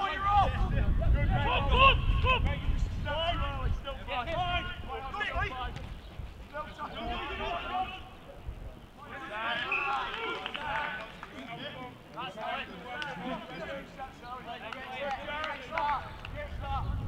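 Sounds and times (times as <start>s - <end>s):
men shouting and calling: 0.0s - 16.9s.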